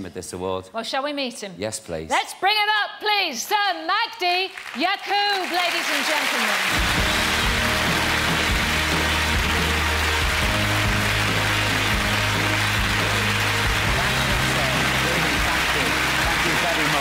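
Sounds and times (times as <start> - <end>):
audience applauding: 4.5 - 17.0.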